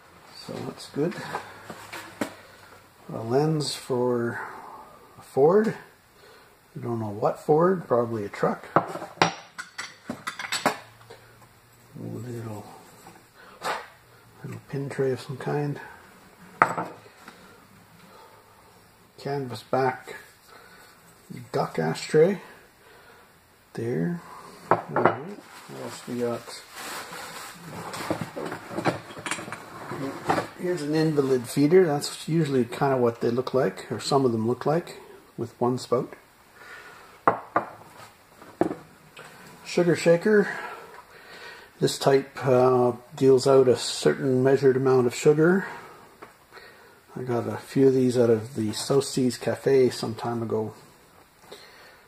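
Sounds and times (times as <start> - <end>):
dishware knocking: 16.6 - 17.0
faint rustle: 25.4 - 28.7.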